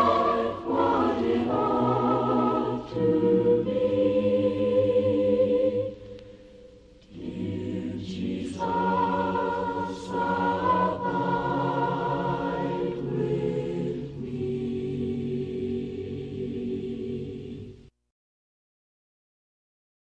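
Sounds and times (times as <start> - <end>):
choir singing a hymn: 0.0 - 17.9.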